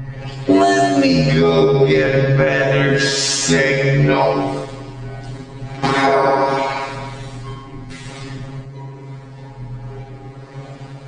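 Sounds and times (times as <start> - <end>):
low steady drone: 0.0 - 11.0.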